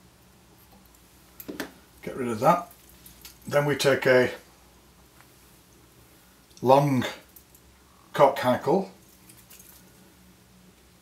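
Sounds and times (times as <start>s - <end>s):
faint low hum: 0.0s - 11.0s
faint handling sound: 9.0s - 10.2s.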